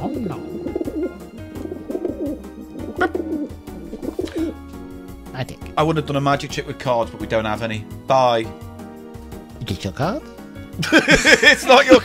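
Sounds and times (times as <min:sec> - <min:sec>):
dove-like cooing: 0:00.0 - 0:04.6
background music: 0:00.0 - 0:12.0.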